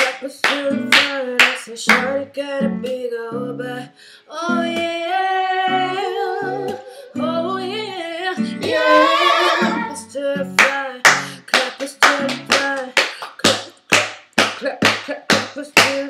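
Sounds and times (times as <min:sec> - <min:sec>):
acoustic guitar chords: 0:00.0 - 0:13.0
woman singing wordless run: 0:00.0 - 0:13.6, 0:14.6 - 0:16.0.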